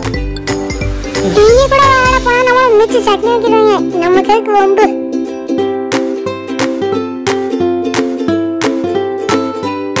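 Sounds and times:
strummed string instrument music: 0.0s - 10.0s.

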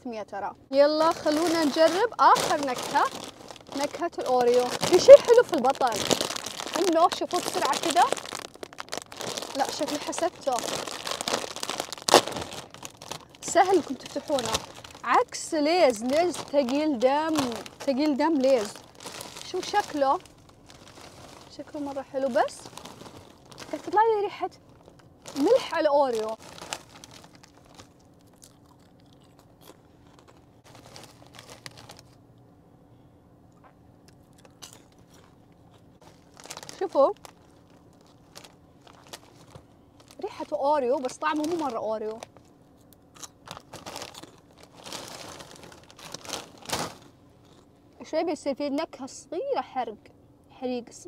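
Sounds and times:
plastic snack bag crinkling: 0.9s - 32.2s, 34.2s - 47.7s
bag seal ripping: 1.0s - 15.1s, 15.9s - 24.0s, 24.7s - 32.2s, 43.2s - 47.1s
popcorn crunching while chewed: 1.0s - 32.2s, 33.5s - 47.7s.

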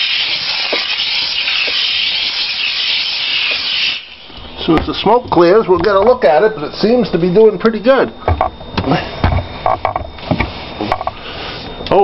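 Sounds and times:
steam cleaner hissing: 0.0s - 4.4s.

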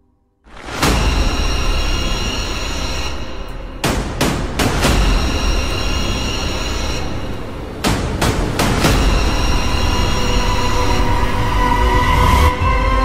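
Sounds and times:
sharp hits: 0.5s - 12.0s
deep rumbling drone: 0.5s - 13.0s
high held tones: 0.9s - 12.6s.

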